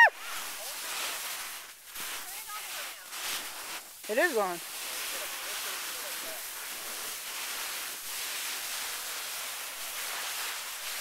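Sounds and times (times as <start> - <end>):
snow hissing against camera: 0.0 - 11.0.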